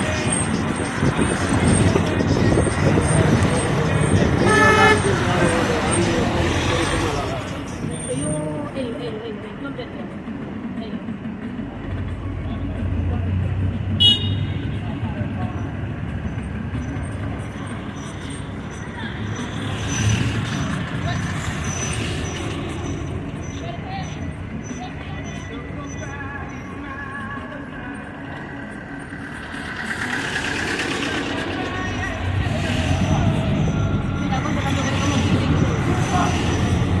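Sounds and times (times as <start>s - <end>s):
car engine rumble: 0.0s - 37.0s
indistinct voices: 0.0s - 37.0s
road noise: 0.0s - 37.0s
vehicles passing: 0.0s - 37.0s
car horn toot: 4.4s - 5.4s, 14.0s - 14.6s.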